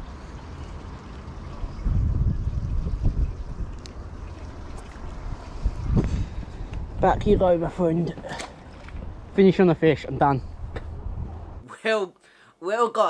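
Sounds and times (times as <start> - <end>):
wind buffeting microphone: 0.0 - 11.6.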